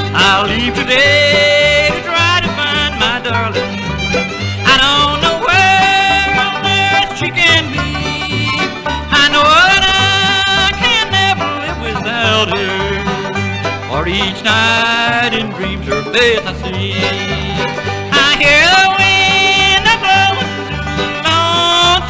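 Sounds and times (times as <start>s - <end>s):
banjo and guitar: 0.0s - 22.0s
fiddle melody: 0.0s - 22.0s.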